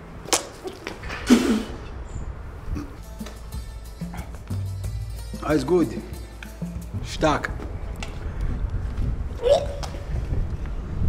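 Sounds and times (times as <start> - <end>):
person throat sound: 1.1 - 1.8, 2.7 - 3.0.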